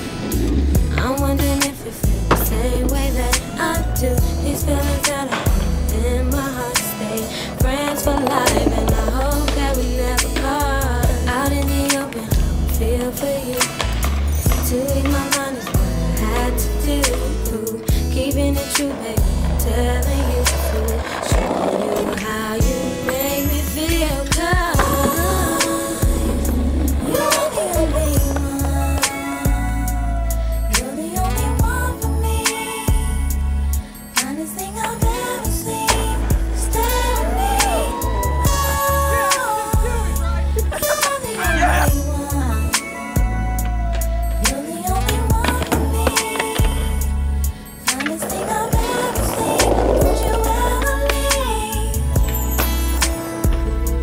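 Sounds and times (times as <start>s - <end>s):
skateboard wheels rolling on brick: 0.0s - 33.1s, 34.5s - 54.0s
r and b song with bass: 0.0s - 54.0s.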